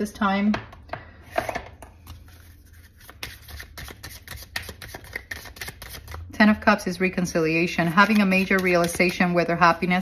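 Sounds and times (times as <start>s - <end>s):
cards rustling and tapping: 2.0s - 6.3s.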